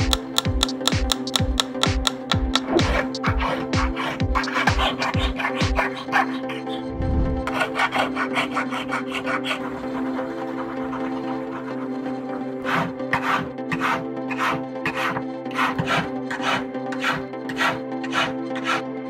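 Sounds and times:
hand file rasping on metal ring: 0.8 - 6.8, 7.5 - 12.0, 12.6 - 18.8.

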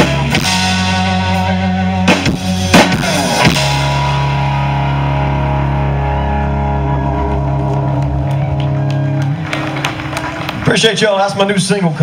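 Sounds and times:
country-rock band holding a chord: 0.0 - 11.3.

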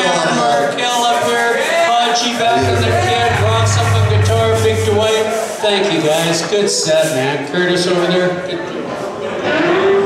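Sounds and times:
long held note sliding up: 2.5 - 5.4.

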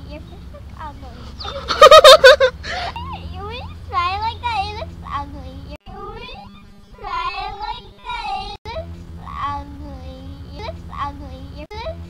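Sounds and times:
steady low hum: 0.0 - 12.0
girl's wavering wordless voice: 3.0 - 7.7, 8.7 - 12.0.

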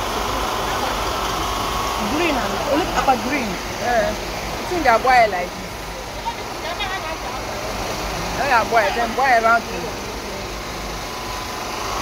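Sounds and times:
busy market din: 0.0 - 12.0.

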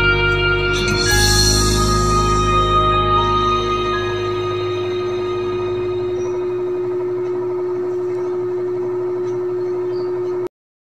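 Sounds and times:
held chord of backing track: 0.0 - 7.2.

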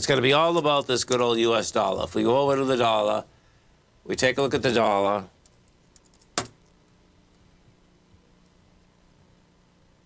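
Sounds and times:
faint room hum: 0.0 - 10.0
computer keyboard keystroke: 5.4 - 6.6.

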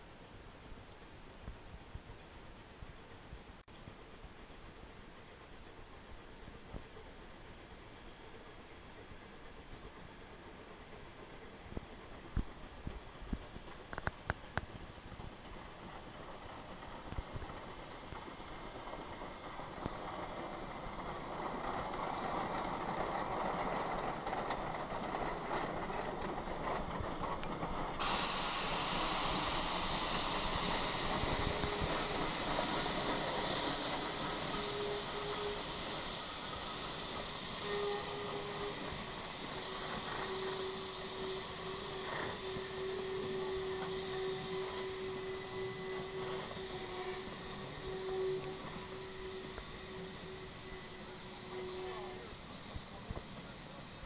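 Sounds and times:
steam locomotives passing: 0.0 - 54.0
loud hiss of escaping steam: 4.2 - 54.0.

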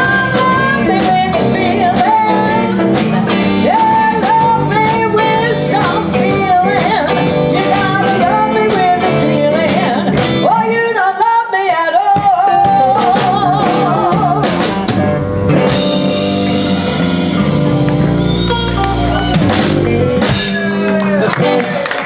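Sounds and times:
drum kit: 0.0 - 11.0, 12.0 - 22.0
woman singing: 0.0 - 14.8
bass guitar: 0.0 - 22.0
electric guitars: 0.0 - 22.0.

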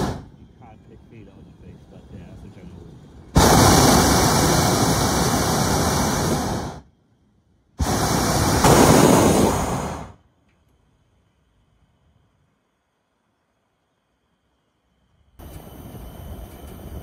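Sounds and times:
propane burner blasts: 0.0 - 7.0, 7.8 - 10.3, 15.4 - 17.0.

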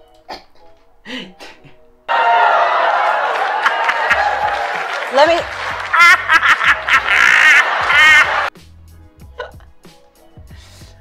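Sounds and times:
woman laughing shrilly: 5.3 - 8.5
quiet music with bass beat: 8.5 - 11.0.

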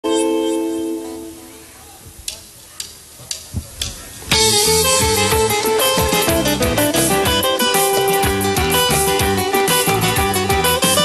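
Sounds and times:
drumstick count-in ticks: 2.2 - 11.0.

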